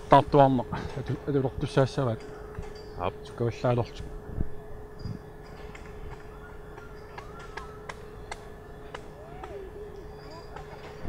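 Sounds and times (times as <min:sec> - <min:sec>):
faint gliding calls: 0:00.0 - 0:11.0
faint steady hum: 0:00.0 - 0:11.0.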